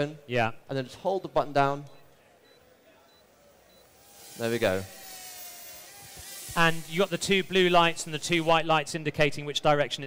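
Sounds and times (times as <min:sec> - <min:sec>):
faint high-pitched beeps: 0:02.4 - 0:03.9.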